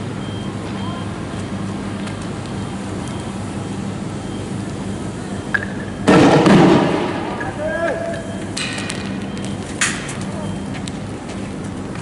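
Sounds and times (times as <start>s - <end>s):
loud explosive bang: 6.0s - 7.4s
faint shouts: 7.5s - 8.2s.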